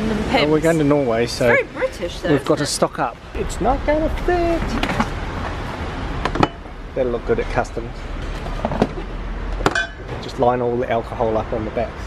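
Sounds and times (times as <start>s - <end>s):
glass bottles clinking: 6.2s - 6.7s, 8.3s - 10.3s.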